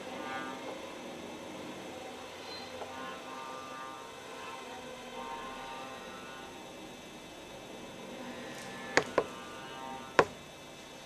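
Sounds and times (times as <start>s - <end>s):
string quartet bowed tones: 2.0s - 6.7s, 8.2s - 10.4s.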